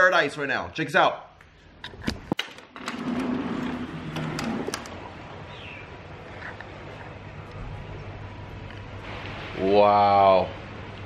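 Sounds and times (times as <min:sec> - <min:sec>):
low steady hum: 0:01.2 - 0:11.0
birds calling: 0:04.9 - 0:07.3.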